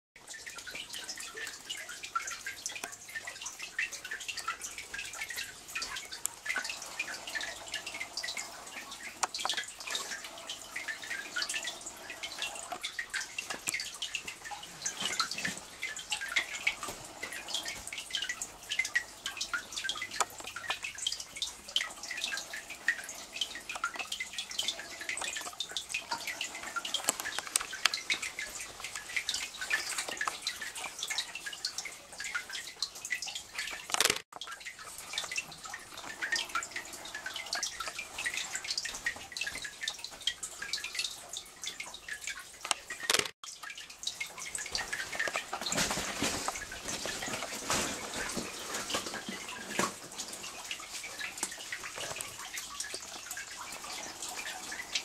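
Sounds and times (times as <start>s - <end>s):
water dripping into shallow water: 0.2s - 55.0s.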